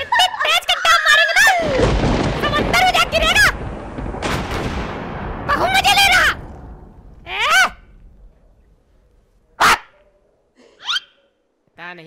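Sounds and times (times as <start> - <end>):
sharp crack: 1.6 - 10.0
cartoon bark-like yelp: 9.6 - 10.0, 10.8 - 11.3.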